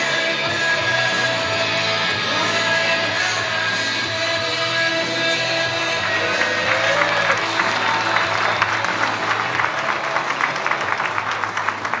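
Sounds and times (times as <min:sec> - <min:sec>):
faint backing music: 0:00.0 - 0:12.0
audience applauding: 0:05.7 - 0:12.0.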